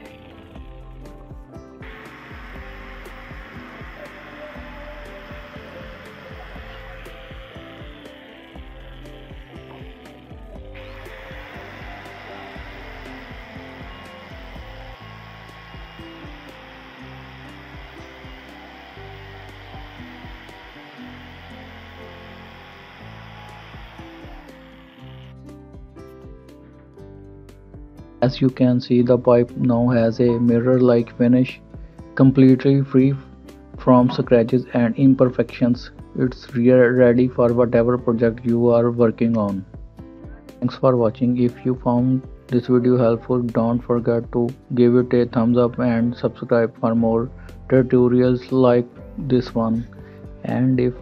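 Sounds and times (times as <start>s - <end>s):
angle grinder buffing steel: 0.0s - 25.4s
background music: 0.0s - 51.0s.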